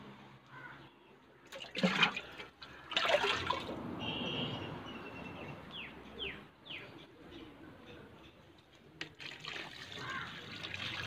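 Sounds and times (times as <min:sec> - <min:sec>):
water pouring from plastic tub: 0:01.5 - 0:03.8, 0:09.0 - 0:11.0
water splashing: 0:01.5 - 0:03.9, 0:09.0 - 0:11.0.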